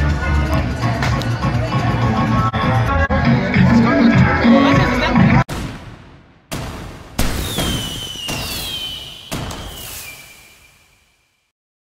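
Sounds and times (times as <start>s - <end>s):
sudden hits: 5.5s - 10.4s.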